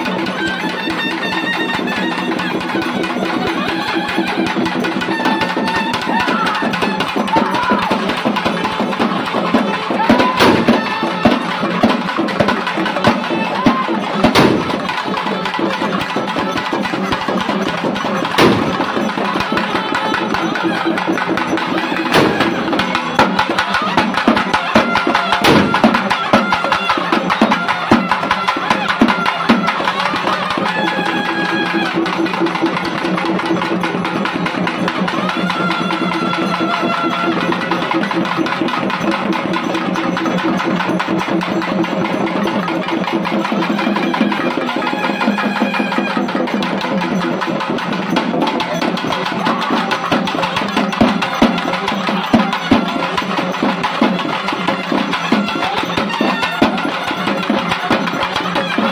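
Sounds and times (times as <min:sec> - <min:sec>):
wind instrument drone: 0:00.0 - 0:33.3, 0:43.4 - 0:46.8, 0:48.7 - 0:58.9
barrel drums beaten fast: 0:00.0 - 0:58.9.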